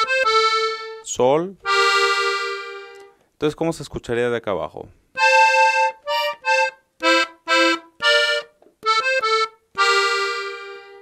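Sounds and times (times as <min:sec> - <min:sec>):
button accordion playing: 0:00.0 - 0:03.2, 0:05.2 - 0:11.0.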